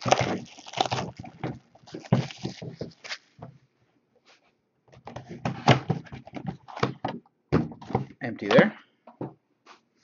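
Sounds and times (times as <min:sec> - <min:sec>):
cardboard box tearing: 0:00.0 - 0:03.2.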